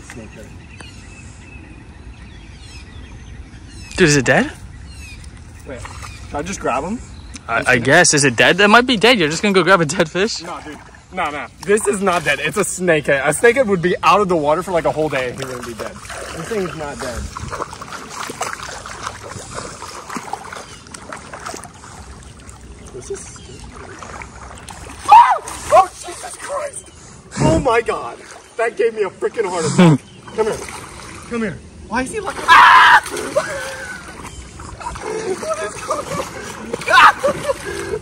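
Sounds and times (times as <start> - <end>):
falling bird calls: 0.0 - 7.7, 15.6 - 38.0
birds chirping: 0.0 - 38.0
bare feet splashing through water: 5.0 - 6.8, 9.2 - 12.9, 14.6 - 26.9, 27.6 - 38.0.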